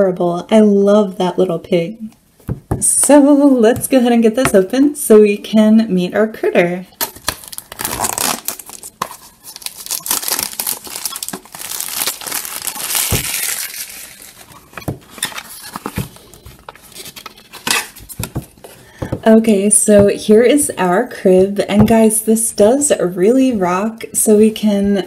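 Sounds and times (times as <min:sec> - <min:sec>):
wrappers crinkling: 0:07.0 - 0:18.6
cardboard tearing: 0:07.1 - 0:16.2.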